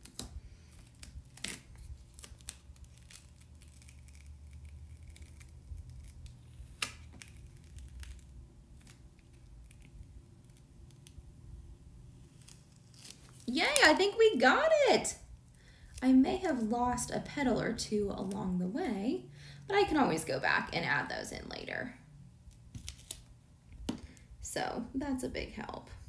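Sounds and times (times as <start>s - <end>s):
vinyl peeling off tape: 0.0s - 11.2s, 12.2s - 14.2s, 22.5s - 23.4s.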